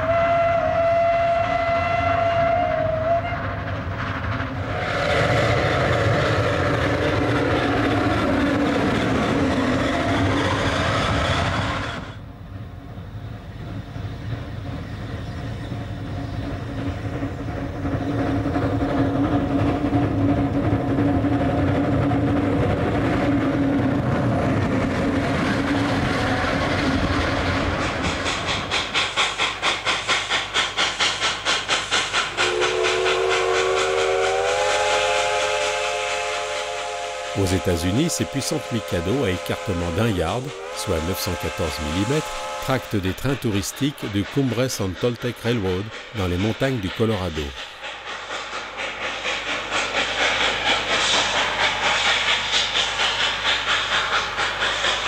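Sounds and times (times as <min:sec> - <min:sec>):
steam whistle blasts: 0:00.0 - 0:03.4, 0:32.4 - 0:43.0
steam locomotive exhaust beats: 0:00.0 - 0:55.0.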